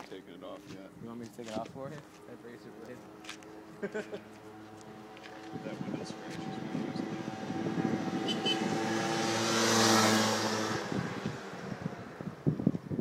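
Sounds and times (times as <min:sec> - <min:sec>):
scooter engine passing: 0:02.1 - 0:13.0.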